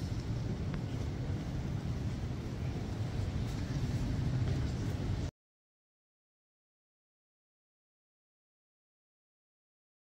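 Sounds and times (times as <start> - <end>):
low rumble of hall room noise: 0.0 - 5.3.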